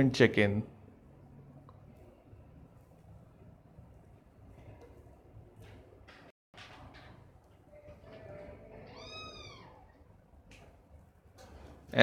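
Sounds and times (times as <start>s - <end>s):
faint cat-like call: 8.8s - 10.0s.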